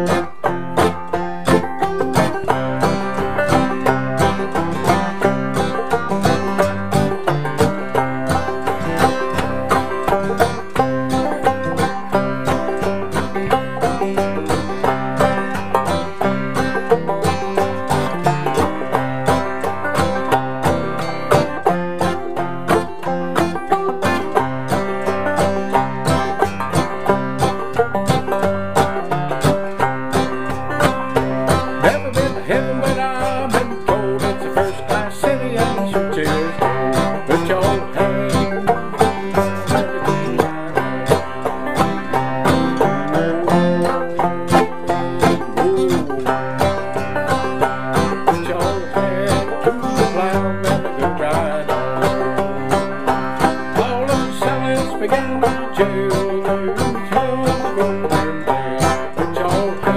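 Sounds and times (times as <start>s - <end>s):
banjo and acoustic guitar playing: 0.0s - 59.9s.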